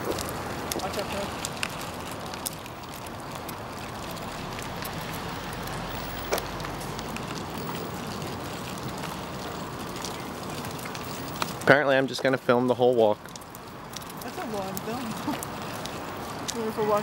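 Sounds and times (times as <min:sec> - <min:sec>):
stroller rolling on pavement: 0:00.0 - 0:17.0.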